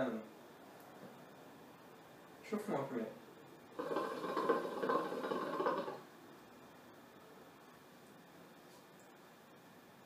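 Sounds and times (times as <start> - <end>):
hookah water bubbling: 3.7 - 6.1.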